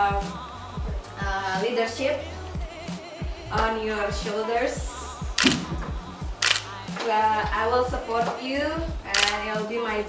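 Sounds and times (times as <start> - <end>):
background music with steady beat: 0.0 - 10.0
short sharp clicks: 5.4 - 5.7, 6.4 - 6.7, 9.2 - 9.4.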